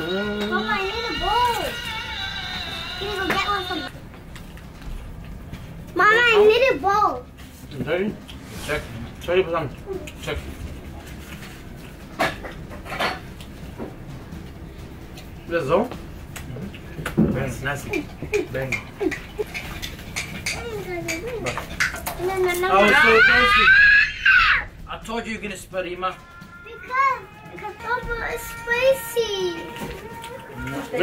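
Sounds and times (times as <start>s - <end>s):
young child calling out: 0.5s - 1.9s, 3.0s - 3.9s, 26.2s - 31.0s
dishes and cutlery clattering: 12.1s - 13.9s, 16.7s - 22.6s.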